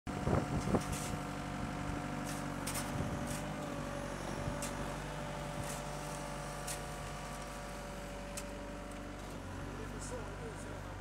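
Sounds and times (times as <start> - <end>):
excavator diesel engine running: 0.1 - 11.0.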